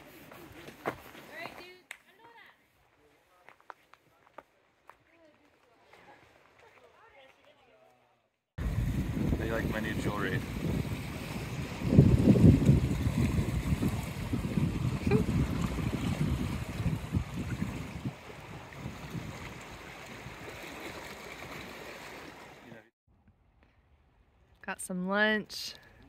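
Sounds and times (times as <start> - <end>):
wind buffeting microphone: 8.6 - 20.6.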